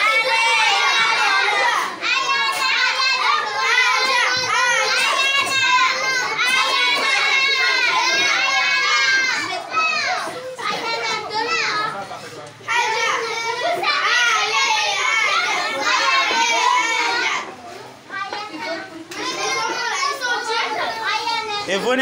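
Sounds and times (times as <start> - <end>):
children talking and calling out: 0.0 - 22.0.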